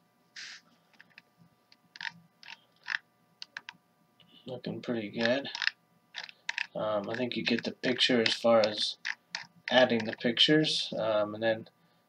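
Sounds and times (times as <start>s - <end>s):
keyboard and mouse clicks: 2.0s - 3.8s, 5.2s - 10.2s.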